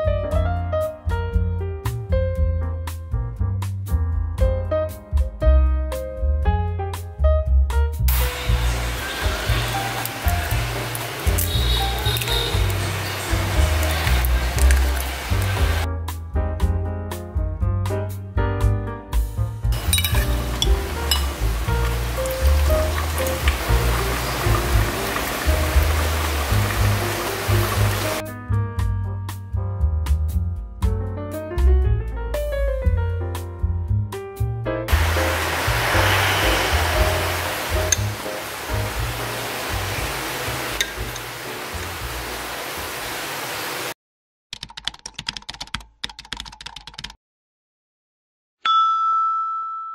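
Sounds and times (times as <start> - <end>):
background music: 0.0 - 42.5
ladle clinking against bowl: 19.8 - 21.4
broth pouring into bowl: 34.9 - 40.2
rapid keyboard key clicks: 44.5 - 47.2.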